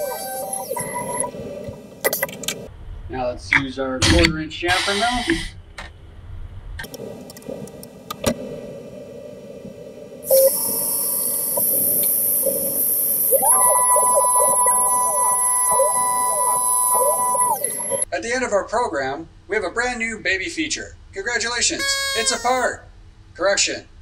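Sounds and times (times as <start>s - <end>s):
milling machine whine: 0.0s - 1.3s, 10.3s - 18.0s
coolant hiss: 10.2s - 18.0s.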